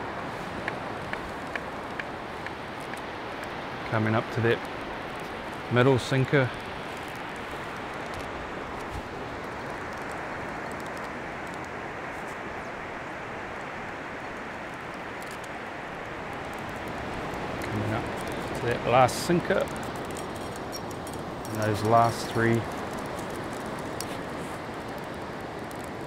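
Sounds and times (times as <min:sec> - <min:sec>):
breaking surf: 0:00.0 - 0:26.0.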